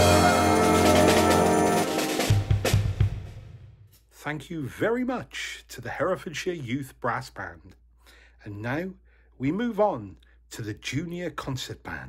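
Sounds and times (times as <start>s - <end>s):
brass band chord: 0.0s - 2.9s
drum kit fill: 0.0s - 4.0s.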